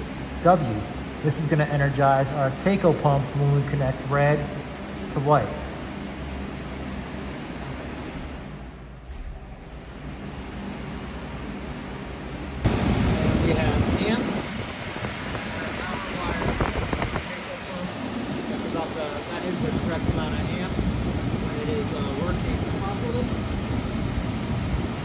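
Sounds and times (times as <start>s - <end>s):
blower fan rushing: 0.0s - 25.0s
steady low hum: 0.0s - 25.0s.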